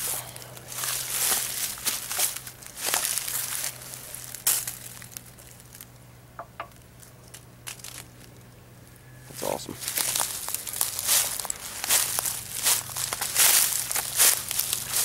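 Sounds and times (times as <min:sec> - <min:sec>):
crunching in dry leaves: 0:00.0 - 0:06.1, 0:06.7 - 0:15.0.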